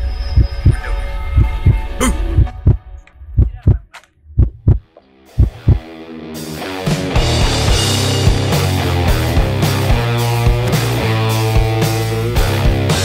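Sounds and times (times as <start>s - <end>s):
low heartbeat-like thumps: 0.3s - 5.8s
rock music: 4.8s - 13.0s.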